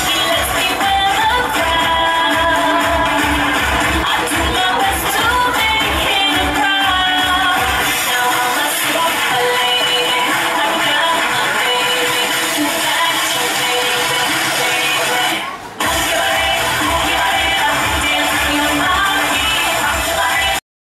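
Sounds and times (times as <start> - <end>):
dance music over speakers: 0.0 - 20.6.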